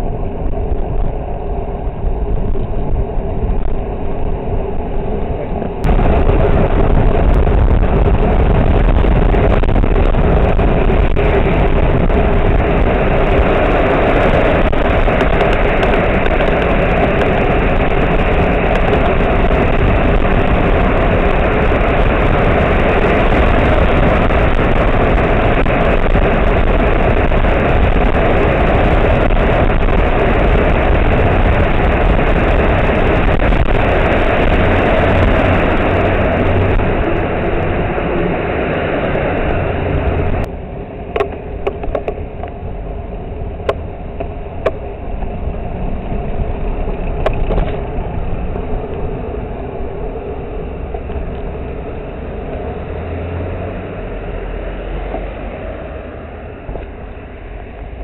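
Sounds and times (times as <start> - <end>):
bicycle riding noise: 0.0 - 58.0
cars passing: 0.0 - 58.0
wind on microphone: 0.0 - 58.0.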